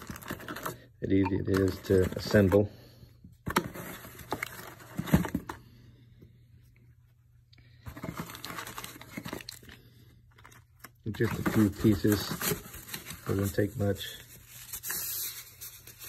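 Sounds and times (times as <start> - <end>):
packaging rustling: 0.0 - 2.6, 3.5 - 5.6, 7.9 - 16.0.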